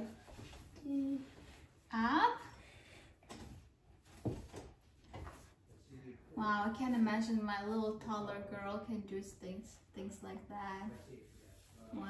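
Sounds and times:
faint knocks and rustles: 0.0 - 1.8, 3.1 - 6.0.

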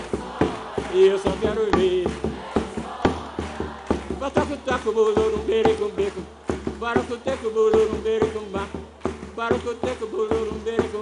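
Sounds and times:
hand drum struck with stick: 0.0 - 11.0.

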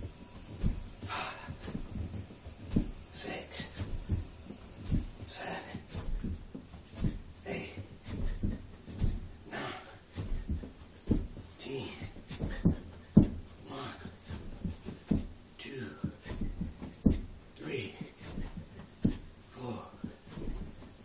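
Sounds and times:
man breathing hard: 0.4 - 4.2, 4.8 - 20.5
thud landing on carpeted floor: 12.4 - 13.5.

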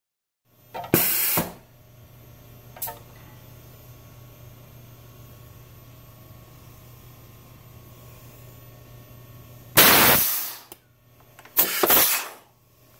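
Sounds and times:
steady low hum: 0.5 - 11.6
compressed air blast: 1.0 - 1.6, 9.8 - 10.7, 11.6 - 12.5.

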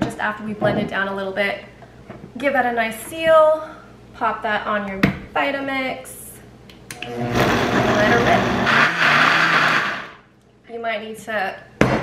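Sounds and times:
blender motor running: 7.0 - 10.2.

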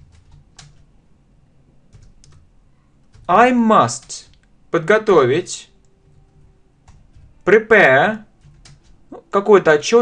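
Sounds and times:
typing on computer keyboard: 0.0 - 0.9, 1.9 - 4.5, 5.8 - 7.6, 8.2 - 9.2.

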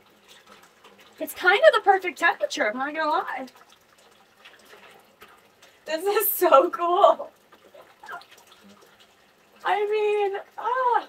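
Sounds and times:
faint water drips: 0.0 - 11.0
water trickling into bathtub: 0.0 - 11.0.

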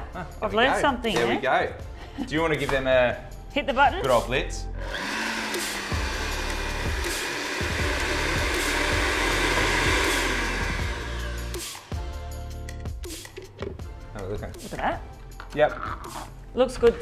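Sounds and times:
blender grinding seeds: 4.8 - 11.9.

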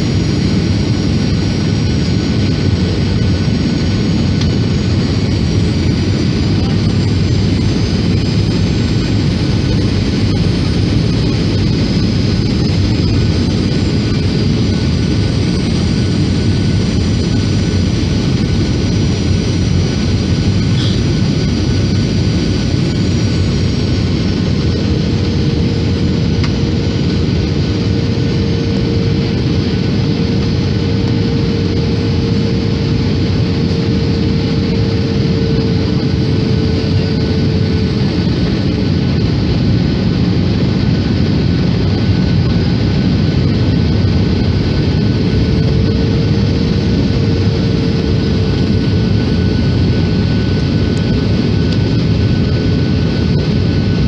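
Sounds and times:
airliner engine and airflow rush: 0.0 - 54.0.

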